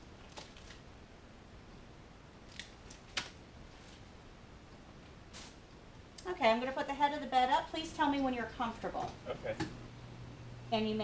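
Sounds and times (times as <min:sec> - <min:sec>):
gloves being peeled off: 0:02.4 - 0:04.1
glove snaps: 0:02.5 - 0:03.4.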